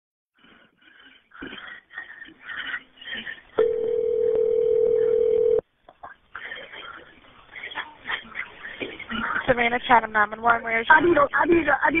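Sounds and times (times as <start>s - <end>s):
steady telephone tone: 3.6s - 5.6s
muffled sounds on phone line: 3.6s - 9.4s.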